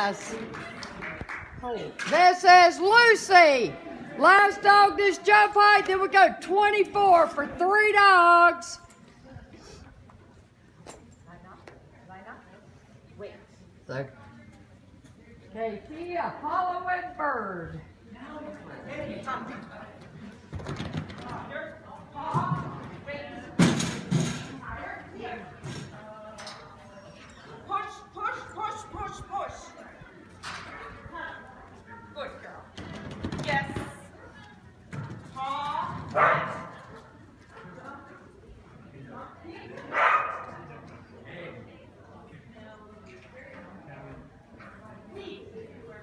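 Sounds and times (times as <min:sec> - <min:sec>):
dog barking: 0:36.2 - 0:36.8, 0:39.9 - 0:40.5.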